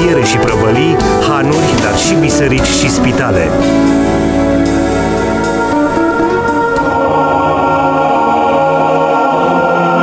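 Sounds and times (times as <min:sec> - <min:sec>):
choir singing held chords: 0:00.0 - 0:10.0.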